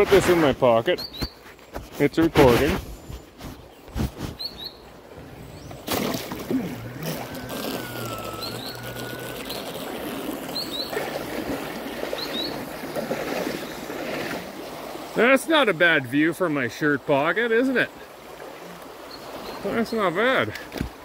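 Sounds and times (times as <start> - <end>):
bird chirping: 3.1 - 6.1, 6.8 - 11.2, 12.2 - 12.7
water rushing: 4.9 - 21.0
electric motor whirring: 6.8 - 11.0.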